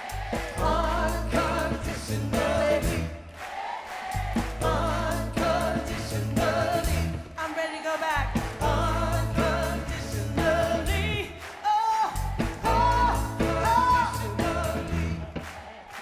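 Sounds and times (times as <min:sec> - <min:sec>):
drums: 0:00.0 - 0:16.0
electric bass: 0:00.1 - 0:03.2, 0:04.2 - 0:07.4, 0:08.2 - 0:11.3, 0:12.2 - 0:15.4.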